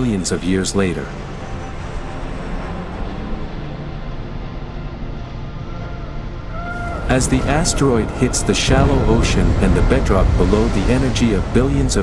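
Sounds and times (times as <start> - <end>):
low cinematic rumble: 6.2 - 12.0.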